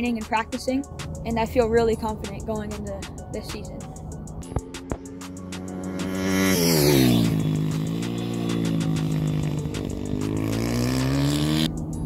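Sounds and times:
motorcycle engine revving: 0:04.4 - 0:12.0.

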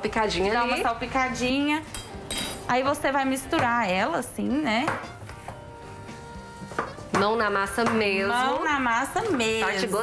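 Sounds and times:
soft background music chord: 0:00.3 - 0:10.0.

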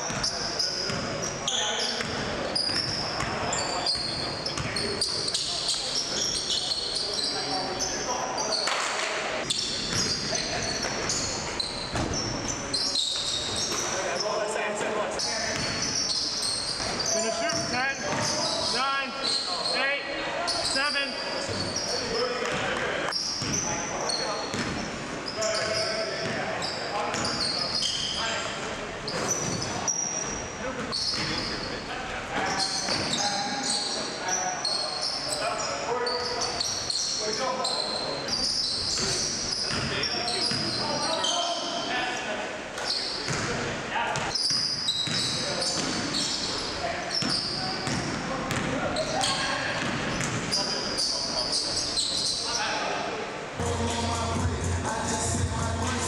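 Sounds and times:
sneakers squeaking: 0:00.0 - 0:53.0
basketball bouncing on hardwood: 0:49.8 - 0:50.5.

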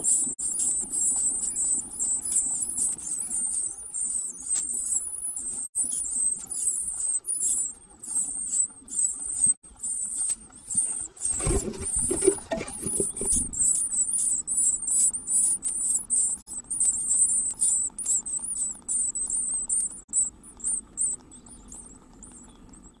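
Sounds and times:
nestlings cheeping: 0:00.0 - 0:23.0
bird wings fluttering in nest box: 0:10.2 - 0:13.8.

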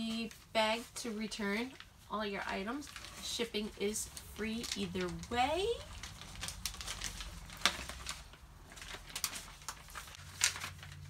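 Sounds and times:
packaging rustling: 0:00.1 - 0:11.0.

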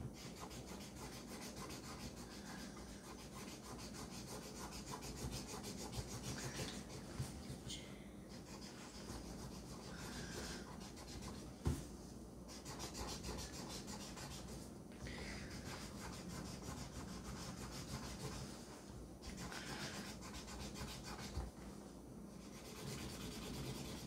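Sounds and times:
marker scribbling on paper: 0:00.2 - 0:07.0, 0:08.3 - 0:11.4, 0:12.5 - 0:14.6, 0:15.5 - 0:18.6, 0:19.3 - 0:21.4, 0:22.4 - 0:24.0.

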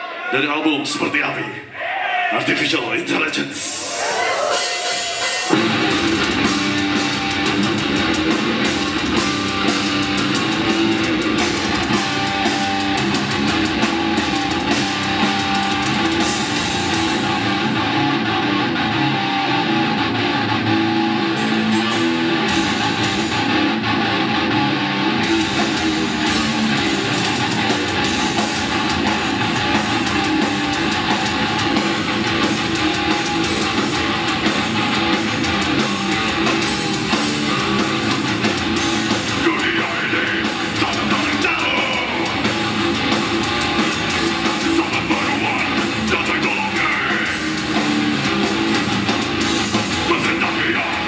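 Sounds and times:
distorted electric guitars: 0:02.4 - 0:51.0
drum kit: 0:03.6 - 0:51.0.

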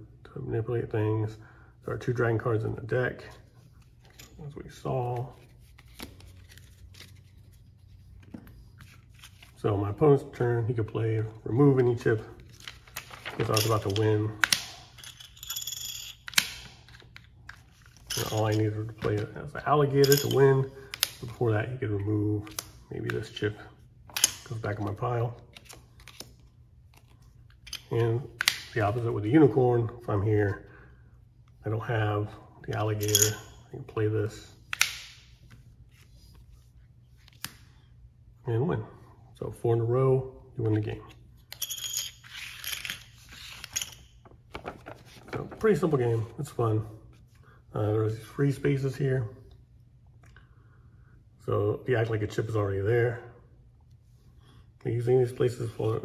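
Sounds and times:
paper rustling and crackling: 0:12.3 - 0:14.0, 0:43.2 - 0:45.8
plastic chips clinking: 0:12.7 - 0:16.9.

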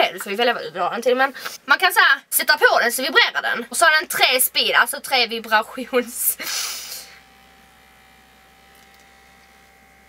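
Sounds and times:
faint high vibration buzz: 0:00.0 - 0:10.0.

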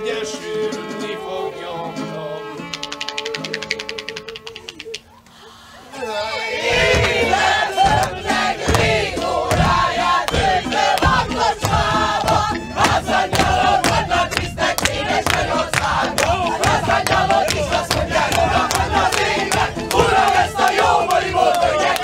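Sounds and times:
group singing and shouting: 0:00.0 - 0:04.3, 0:05.3 - 0:22.0
violin playing: 0:06.0 - 0:22.0
sharp regular beats: 0:06.8 - 0:21.2.

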